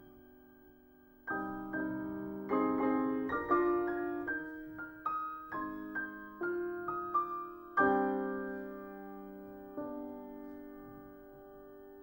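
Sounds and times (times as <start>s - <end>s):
slow quiet piano: 0.0s - 12.0s.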